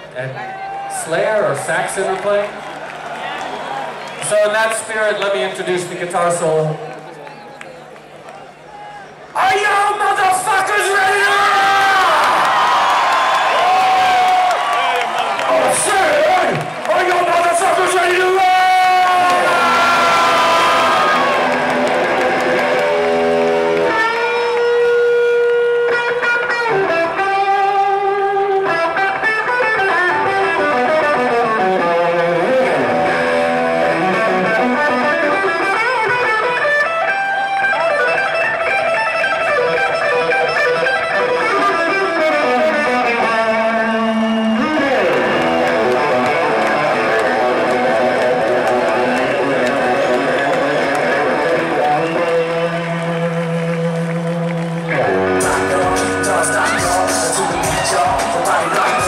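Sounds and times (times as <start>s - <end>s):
electric guitar solo: 10.3s - 59.0s.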